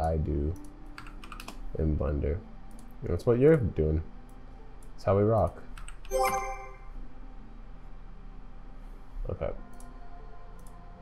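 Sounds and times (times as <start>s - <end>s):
computer mouse clicks: 0.5s - 1.6s, 10.6s - 10.8s.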